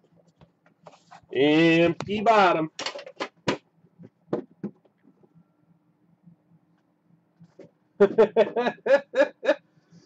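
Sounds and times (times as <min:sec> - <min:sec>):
cardboard boxes knocking on table: 0:04.3 - 0:04.8.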